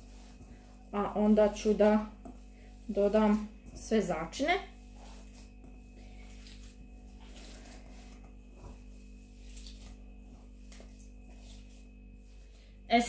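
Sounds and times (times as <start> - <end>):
hands squelching minced meat: 0.0 - 12.7
steady low hum: 0.0 - 13.0.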